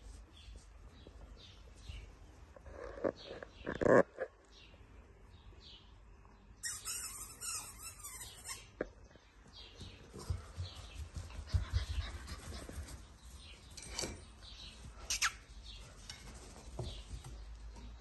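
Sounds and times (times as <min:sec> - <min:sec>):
puppy squealing: 0:06.6 - 0:08.7.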